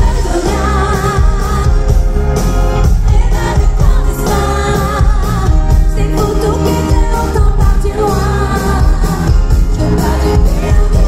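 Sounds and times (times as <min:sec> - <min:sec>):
woman singing into microphone: 0:00.0 - 0:02.2, 0:02.8 - 0:11.0
pop band with keyboards and bass: 0:00.0 - 0:11.0.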